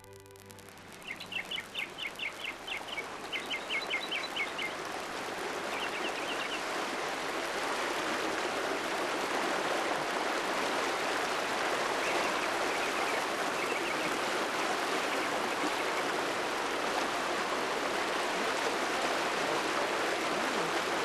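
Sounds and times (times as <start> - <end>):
bird chirping: 0.0 - 4.8.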